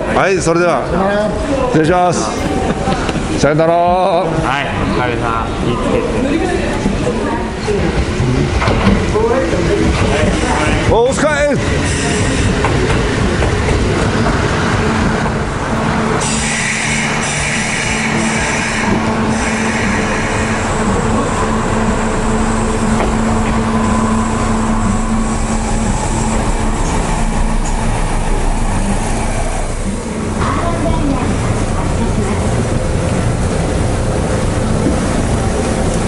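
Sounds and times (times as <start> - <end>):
electric trains moving: 0.0 - 36.0
steady low hum: 12.2 - 36.0.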